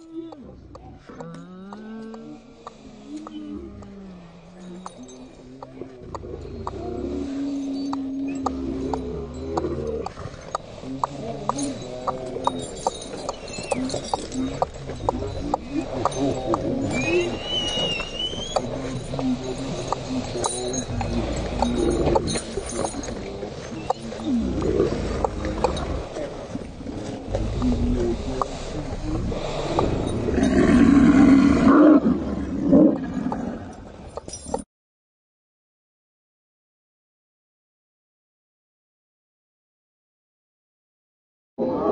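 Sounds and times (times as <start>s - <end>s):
sled dogs howling and yelping: 3.1s - 26.3s.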